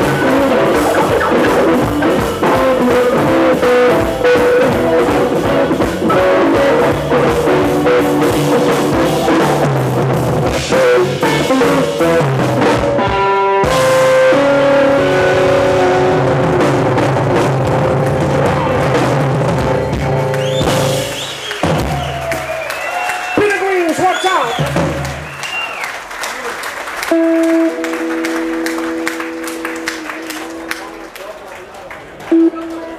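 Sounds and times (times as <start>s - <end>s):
live blues band playing: 0.0s - 26.0s, 26.6s - 31.2s, 32.2s - 32.9s
scattered applause: 19.8s - 32.9s.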